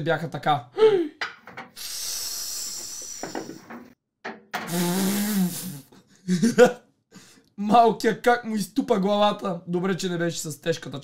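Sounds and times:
person's voice: 0:07.6 - 0:11.0.

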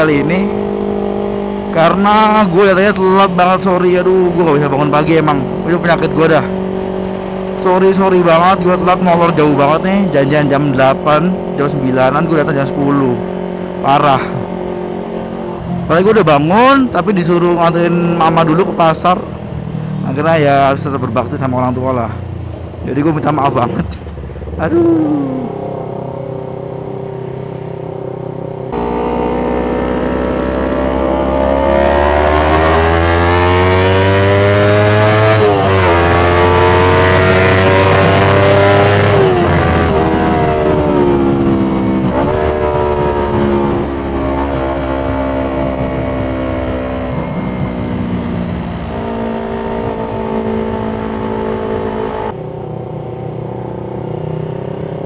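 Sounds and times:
motorcycle engine accelerating: 0:00.0 - 0:55.0
wind rush: 0:37.8 - 0:52.4.

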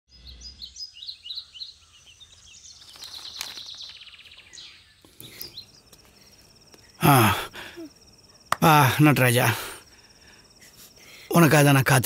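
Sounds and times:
birds chirping: 0:00.1 - 0:12.0
insect trill: 0:00.2 - 0:12.0.

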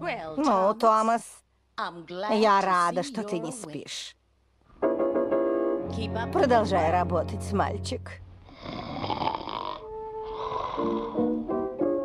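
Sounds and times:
cartoon cat snoring: 0:08.5 - 0:11.3.

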